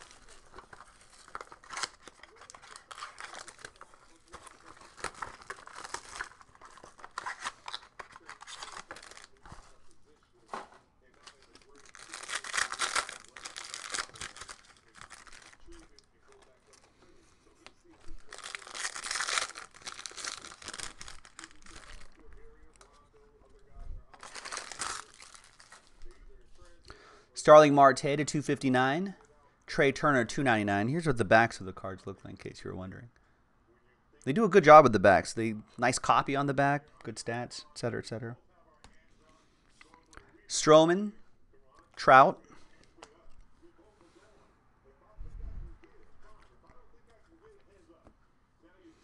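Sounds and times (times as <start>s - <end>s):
wrapper tearing: 0.0s - 9.8s, 11.2s - 16.5s, 18.1s - 22.9s, 24.1s - 26.0s
plastic wrap crinkling: 0.0s - 10.1s, 11.1s - 16.9s, 17.6s - 26.4s.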